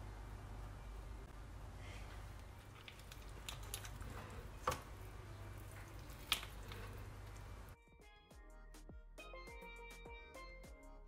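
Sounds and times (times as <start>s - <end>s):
wet dripping and squishing: 2.2s - 7.8s
music: 7.7s - 11.0s.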